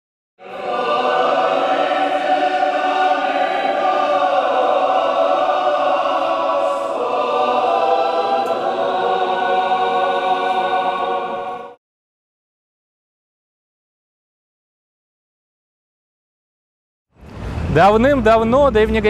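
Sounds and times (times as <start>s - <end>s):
choir singing held chords: 0.4s - 11.8s.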